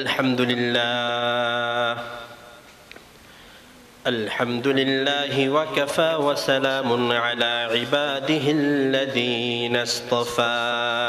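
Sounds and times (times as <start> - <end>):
man chanting melodically: 0.0 - 2.6, 4.0 - 11.0.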